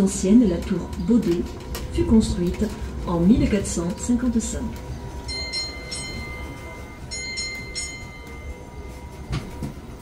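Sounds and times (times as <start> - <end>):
low rumble of train moving: 0.0 - 10.0
warning bell ringing: 5.3 - 9.2.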